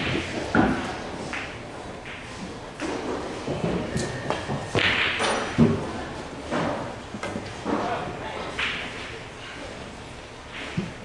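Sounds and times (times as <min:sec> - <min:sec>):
pool balls clacking: 0:00.0 - 0:09.1
cue striking ball: 0:03.6 - 0:06.0.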